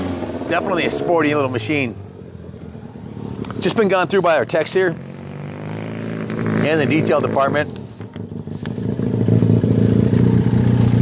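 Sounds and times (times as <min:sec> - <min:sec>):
motorcycle engine approaching: 0:00.0 - 0:11.0.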